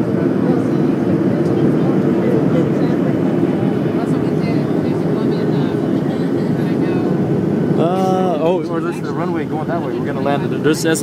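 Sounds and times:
airliner cabin engine noise: 0:00.0 - 0:11.0.

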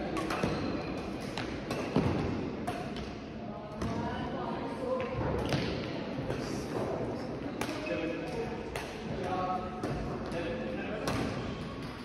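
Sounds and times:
voices in a hall: 0:00.0 - 0:12.0.

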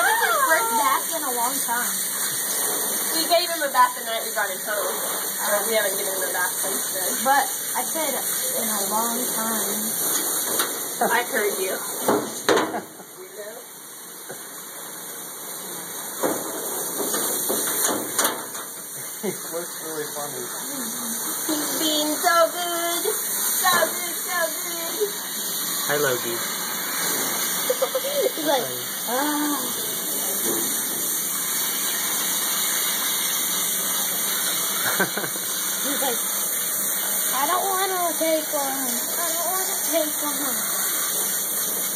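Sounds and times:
shower water running into metal tub: 0:00.0 - 0:41.9.

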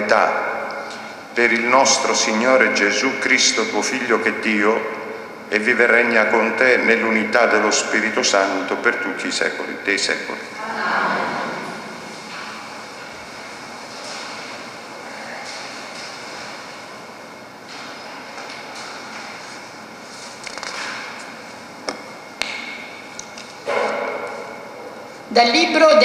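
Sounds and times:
congregation settling in church: 0:00.0 - 0:26.0.

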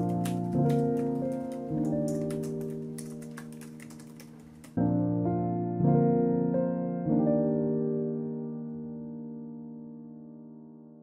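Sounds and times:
typing on computer keyboard: 0:00.0 - 0:04.8
soft piano music: 0:00.0 - 0:11.0.

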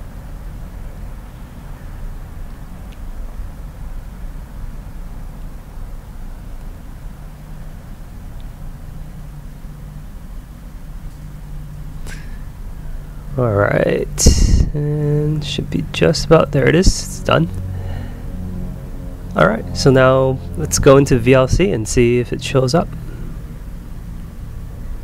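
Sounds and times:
faint hum: 0:00.0 - 0:25.0
low background rumble: 0:00.0 - 0:25.0.

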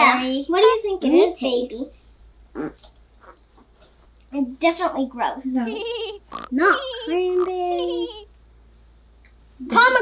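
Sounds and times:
faint small noises: 0:00.0 - 0:10.0.

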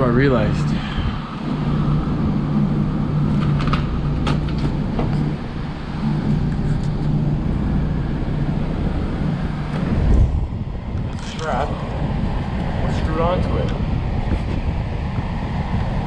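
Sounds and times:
blower fan humming: 0:00.0 - 0:16.0.

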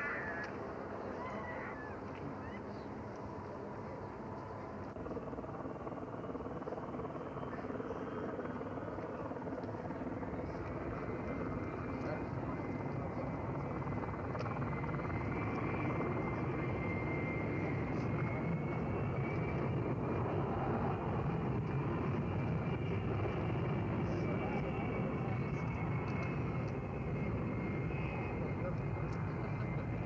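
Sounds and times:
jet engines rushing with high whine: 0:00.0 - 0:30.0.

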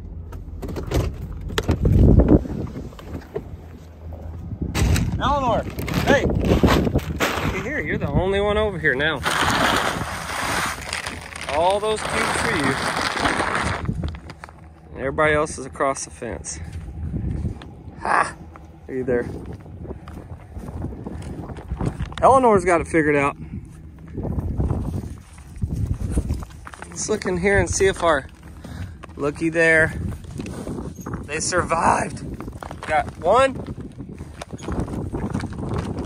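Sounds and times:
feed pellets pouring from paper bag: 0:09.2 - 0:13.9
footsteps crunching on gravel: 0:09.2 - 0:14.9, 0:16.5 - 0:36.0.

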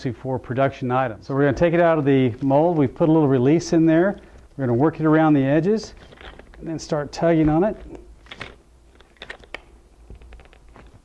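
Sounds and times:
plastic bucket clicking and creaking: 0:05.9 - 0:06.6.

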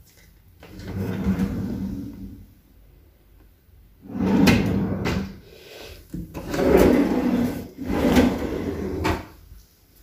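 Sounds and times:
drawer sliding: 0:00.6 - 0:02.4, 0:04.0 - 0:05.4, 0:06.3 - 0:09.3.

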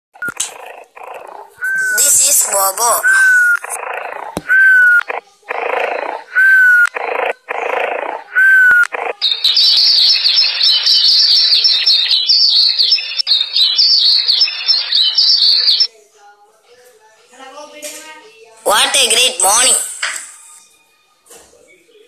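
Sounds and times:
birdsong chirping: 0:00.2 - 0:15.9
cartoon snoring with whistle: 0:00.3 - 0:09.2.

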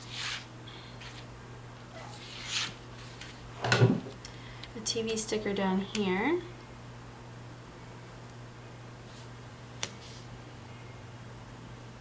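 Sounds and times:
woman speaking: 0:04.8 - 0:06.5.

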